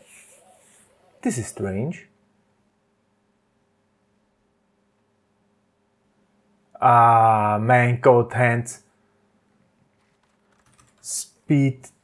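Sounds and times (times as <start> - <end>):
faint keyboard typing: 9.8 - 11.3.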